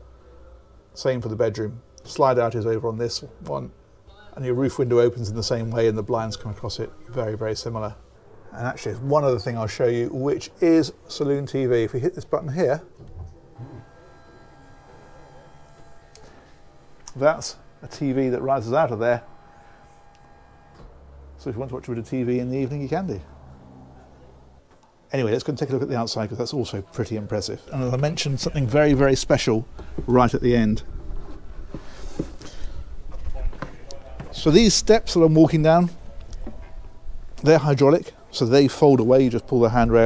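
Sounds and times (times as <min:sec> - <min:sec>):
electric motor whine: 0:13.0 - 0:24.7.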